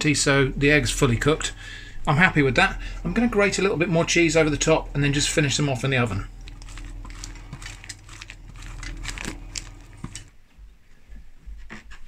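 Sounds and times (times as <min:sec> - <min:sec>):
low electrical hum: 0:00.0 - 0:11.6.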